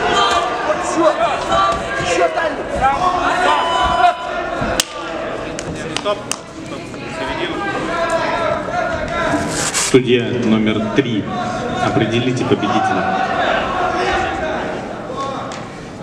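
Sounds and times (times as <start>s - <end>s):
people shouting: 0.0s - 5.5s, 7.0s - 9.6s, 10.7s - 15.5s.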